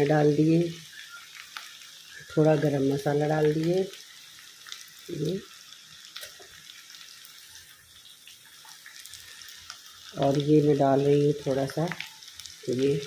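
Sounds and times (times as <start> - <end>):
food sizzling in oil: 0.0 - 13.0.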